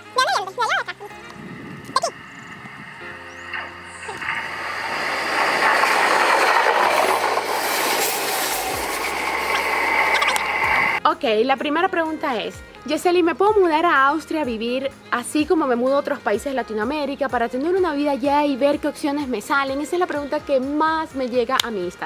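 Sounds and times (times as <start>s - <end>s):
passenger train passing: 0.0s - 11.0s.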